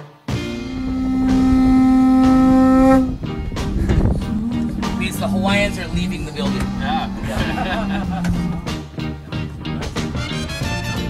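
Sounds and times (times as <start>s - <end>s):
long blown horn note: 0.0s - 3.3s
rough noisy sound: 0.5s - 8.6s.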